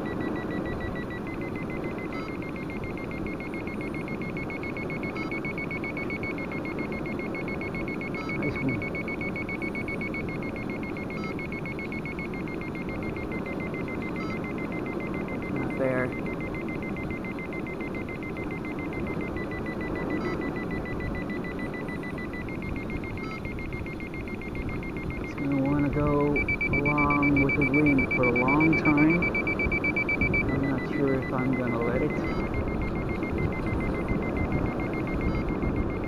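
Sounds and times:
high electronic tone: 0.0s - 36.0s
short beeps: 0.0s - 36.0s
man speaking: 8.4s - 8.9s, 15.5s - 16.2s, 25.3s - 29.2s, 30.5s - 32.3s.

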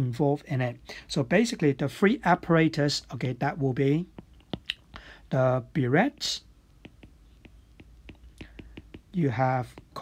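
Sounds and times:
stylus tapping on screen: 4.0s - 5.1s, 6.0s - 10.0s.

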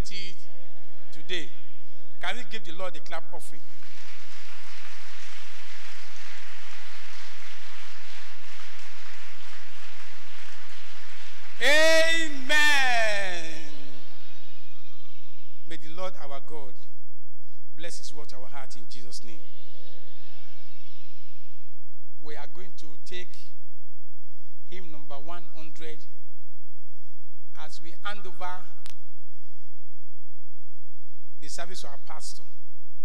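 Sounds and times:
faint low hum: 0.0s - 33.0s
congregation clapping: 3.5s - 14.2s.

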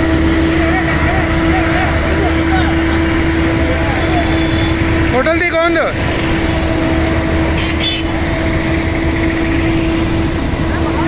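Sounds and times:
street traffic: 0.0s - 11.0s
vehicle engine rumbling: 0.0s - 11.0s.

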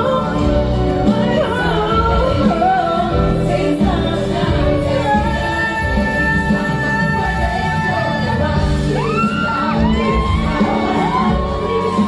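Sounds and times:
woman singing into a microphone: 0.0s - 12.0s.

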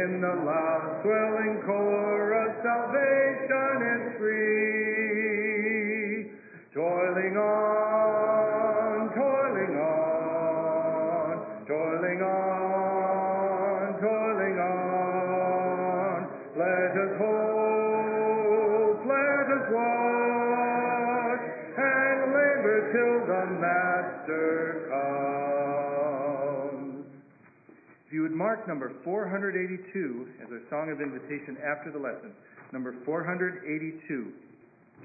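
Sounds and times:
congregation singing a hymn: 0.0s - 6.2s, 6.8s - 27.2s.

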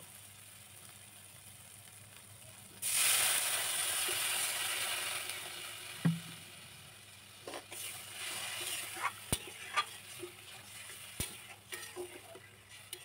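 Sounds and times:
oil sizzling and hissing: 0.0s - 13.0s
knock: 6.0s - 6.2s.

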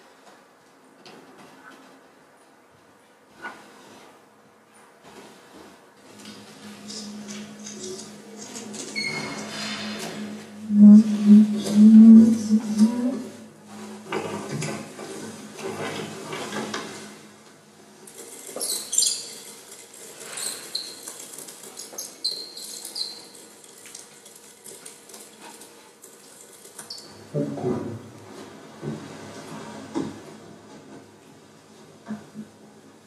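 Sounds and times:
low sustained tone: 6.6s - 15.6s.

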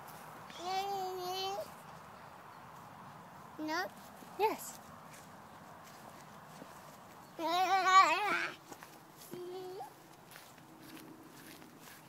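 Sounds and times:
toddler crying: 7.4s - 8.6s, 9.3s - 10.0s.

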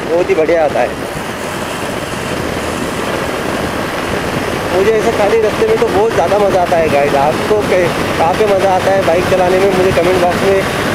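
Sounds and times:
motorcycle engine cruising: 0.0s - 10.9s
wind and road noise: 0.0s - 10.9s.

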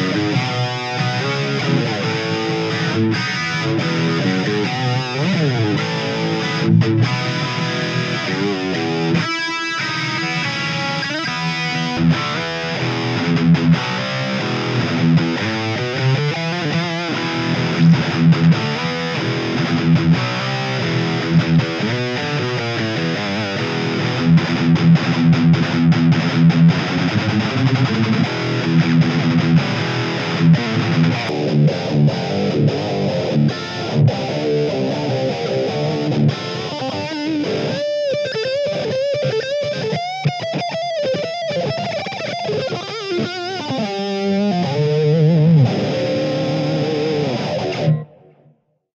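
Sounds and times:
distorted electric guitar riff: 0.0s - 48.8s
swirling overdriven guitar with effects: 0.0s - 48.8s.

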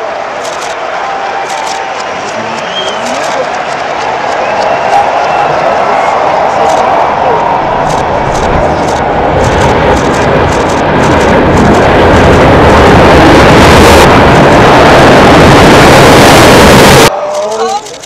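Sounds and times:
reversed building collapse roar: 0.0s - 17.2s.

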